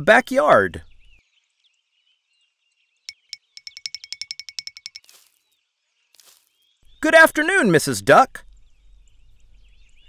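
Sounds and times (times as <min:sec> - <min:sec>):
faint bird chirps: 0:00.1 - 0:07.3
trill of ringing ticks: 0:03.1 - 0:05.3.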